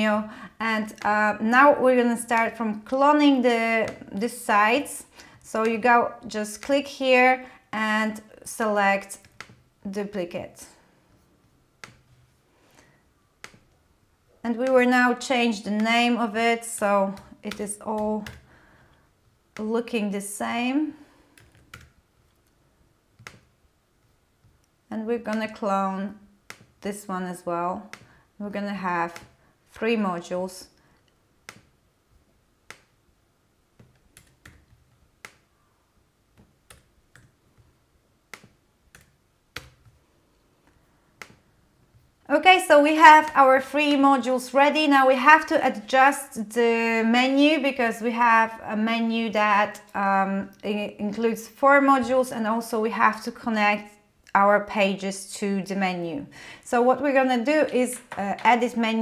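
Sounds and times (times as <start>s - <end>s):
computer keys and mouse clicking: 9.1s - 10.2s, 11.8s - 12.2s, 13.4s - 13.8s, 16.7s - 18.5s, 21.2s - 25.6s, 26.4s - 27.0s, 27.8s - 28.2s, 29.1s - 29.4s, 30.6s - 31.8s, 32.6s - 33.0s, 33.8s - 35.5s, 36.3s - 40.0s, 40.6s - 42.1s.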